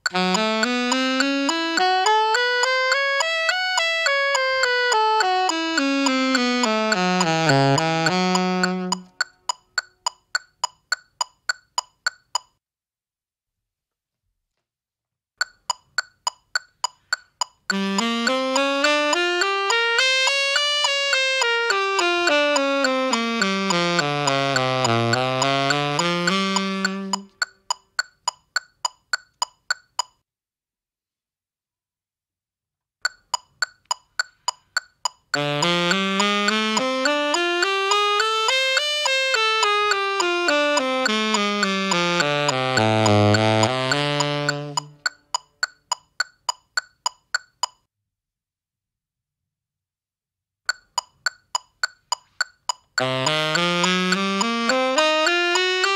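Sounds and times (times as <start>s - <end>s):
tenor saxophone playing scale: 0.0s - 10.0s, 17.7s - 27.7s, 35.4s - 45.4s, 52.9s - 55.9s
electronic metronome clicking: 0.0s - 12.6s, 15.4s - 30.2s, 33.0s - 47.9s, 50.7s - 55.9s.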